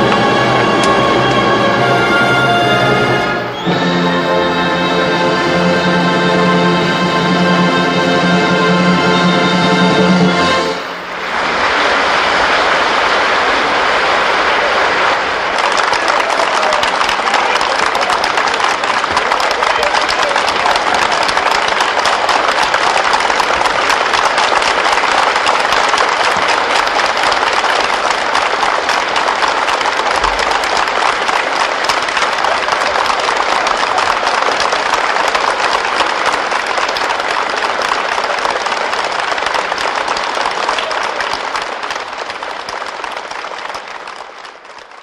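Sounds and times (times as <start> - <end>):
audience applauding: 0.0 - 45.0.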